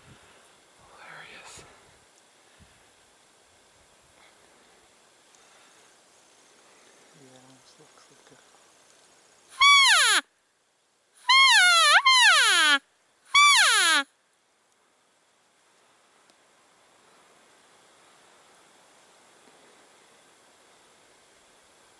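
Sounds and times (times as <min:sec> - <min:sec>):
elk call mews sliding down: 0:09.5 - 0:10.2, 0:11.2 - 0:14.0.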